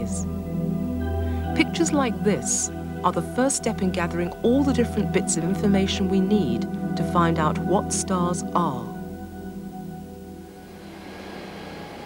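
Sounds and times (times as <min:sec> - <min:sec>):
bell-like synthesizer tones: 0:00.0 - 0:12.0
steady machinery hiss: 0:10.8 - 0:12.0.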